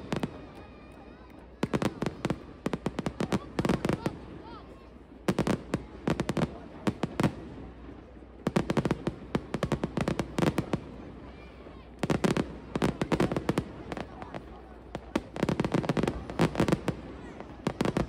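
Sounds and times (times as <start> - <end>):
fireworks bangs and crackles: 0.0 - 18.0.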